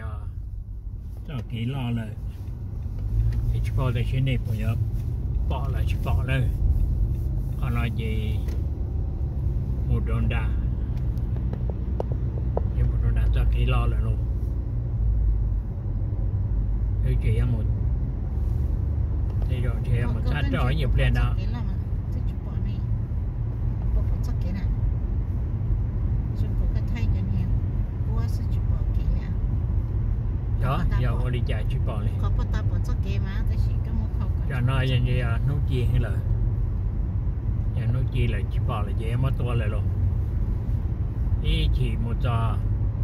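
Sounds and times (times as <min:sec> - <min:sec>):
car road and engine rumble: 0:00.0 - 0:43.0
people talking: 0:01.3 - 0:02.2, 0:07.6 - 0:08.5, 0:19.5 - 0:22.8, 0:23.9 - 0:24.7, 0:26.4 - 0:27.5, 0:28.1 - 0:29.3, 0:30.6 - 0:36.2, 0:37.8 - 0:39.8, 0:41.4 - 0:42.6.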